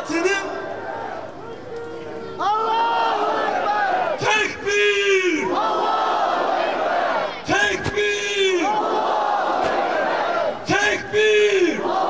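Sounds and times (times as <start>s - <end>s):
crowd chanting: 0.4s - 4.6s, 5.3s - 12.0s
man shouting through microphone: 4.1s - 5.6s, 7.4s - 8.8s, 10.6s - 12.0s.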